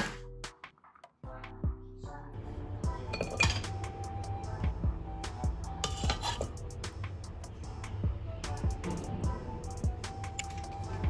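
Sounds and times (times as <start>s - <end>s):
background music with beat: 0.0s - 11.0s
kitchen utensils clinking: 3.2s - 3.8s, 5.8s - 6.5s.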